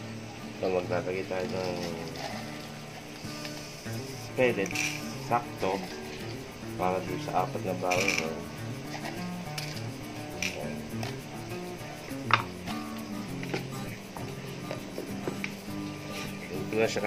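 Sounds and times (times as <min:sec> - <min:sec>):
slow background music: 0:00.0 - 0:17.0.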